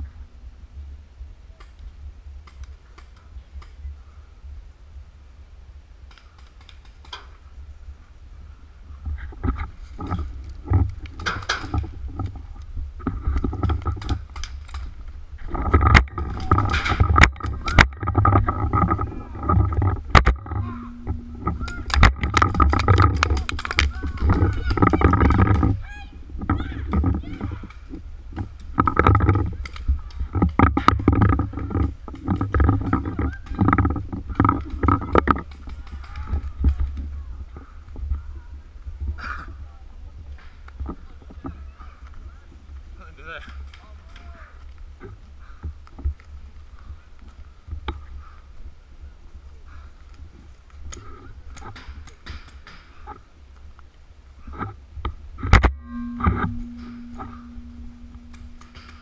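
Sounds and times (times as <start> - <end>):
camera jostling rumble: 8.9 - 39.1.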